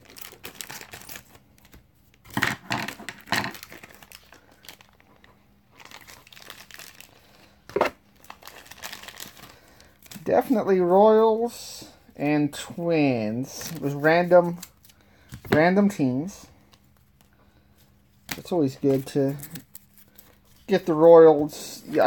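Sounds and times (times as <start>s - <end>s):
packaging crinkling and rustling: 0.0s - 10.3s.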